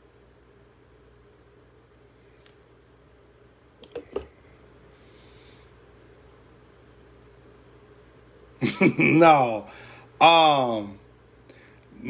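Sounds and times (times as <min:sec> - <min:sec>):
faint steady hum: 0:00.0 - 0:12.0
phone handling clicks and knock: 0:03.8 - 0:04.3.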